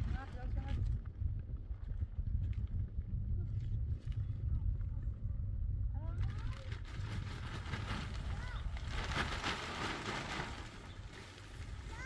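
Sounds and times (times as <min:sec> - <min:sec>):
wind buffeting microphone: 0:00.0 - 0:12.0
plastic sheet rustling: 0:06.2 - 0:12.0.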